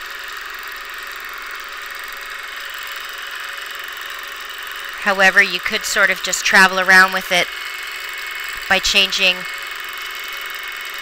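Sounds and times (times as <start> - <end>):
quilting machine humming: 0.0 - 11.0.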